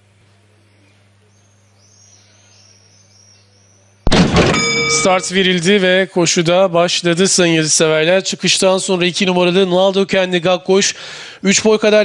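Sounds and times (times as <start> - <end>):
faint bird chirps: 0.5 - 4.0
starting gates clanging open: 4.4 - 5.4
ringing start bell: 4.5 - 5.7.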